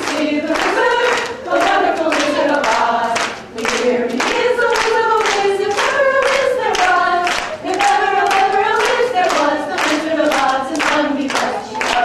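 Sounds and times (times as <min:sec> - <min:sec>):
audience clapping along: 0:00.0 - 0:12.0
group singing a song: 0:00.0 - 0:12.0.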